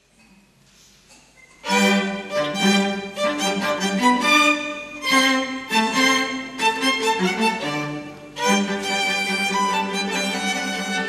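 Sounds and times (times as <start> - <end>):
faint room noise: 0.0 - 11.0
classical violin music: 1.6 - 11.0
low bowed strings: 1.6 - 11.0.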